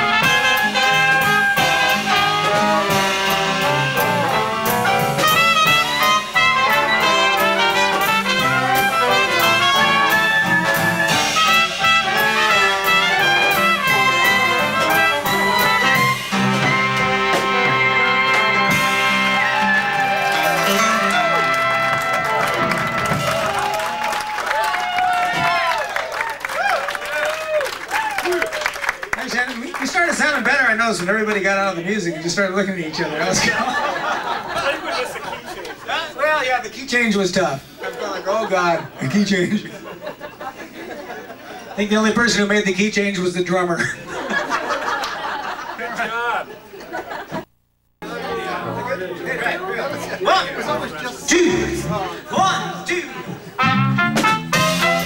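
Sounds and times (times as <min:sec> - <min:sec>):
overlapping chatter: 0:00.0 - 0:25.6, 0:29.1 - 0:36.7, 0:44.1 - 0:55.0
jazz band with horns: 0:00.0 - 0:37.8, 0:47.5 - 0:55.0
audience applause: 0:18.3 - 0:31.4
whoops and shouting voices: 0:23.3 - 0:28.8.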